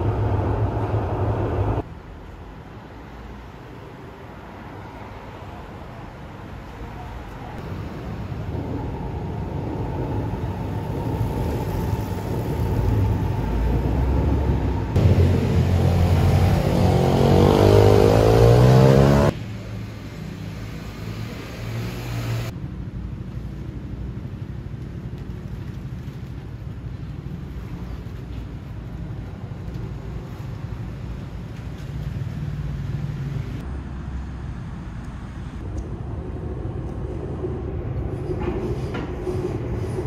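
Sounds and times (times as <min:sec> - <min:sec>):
street background noise: 0:00.0 - 0:40.0
road vehicle passing: 0:02.9 - 0:22.6.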